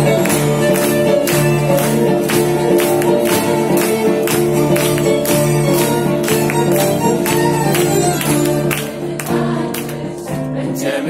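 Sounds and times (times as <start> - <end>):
live band music: 0.0 - 9.6
choir singing: 7.5 - 11.0.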